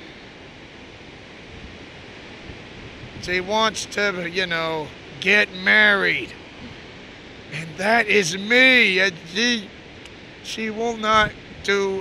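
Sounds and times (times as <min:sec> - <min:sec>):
wind on microphone: 0:01.4 - 0:03.9
waterfall rushing: 0:03.5 - 0:06.8, 0:07.4 - 0:09.7.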